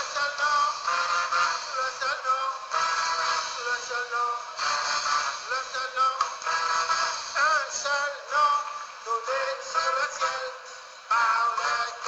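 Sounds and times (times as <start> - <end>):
person singing praise song: 0.0 - 12.0.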